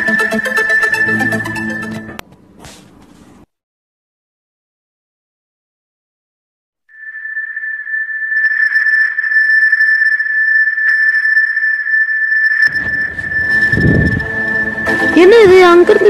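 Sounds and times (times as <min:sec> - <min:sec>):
high-pitched electronic tone: 0:00.0 - 0:02.2, 0:06.9 - 0:16.0
low rumble: 0:12.7 - 0:15.6.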